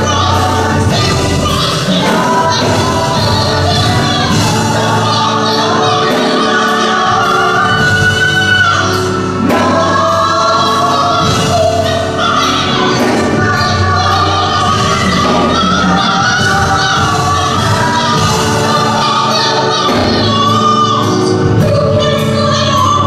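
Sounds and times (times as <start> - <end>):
backing singers: 0.0 - 23.0
woman singing lead vocals: 0.0 - 23.0.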